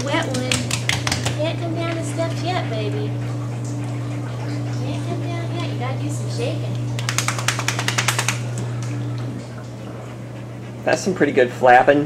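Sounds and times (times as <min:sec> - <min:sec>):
dog shaking water off coat: 0:07.0 - 0:08.5.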